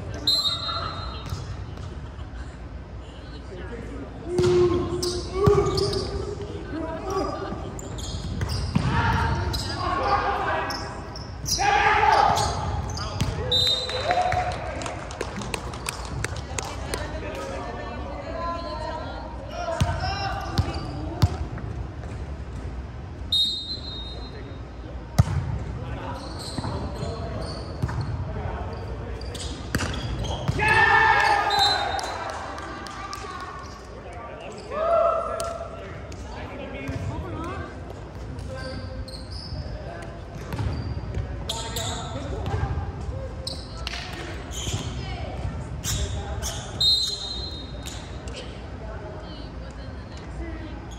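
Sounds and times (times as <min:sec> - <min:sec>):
players shouting: 0:08.8 - 0:14.7, 0:30.5 - 0:32.5.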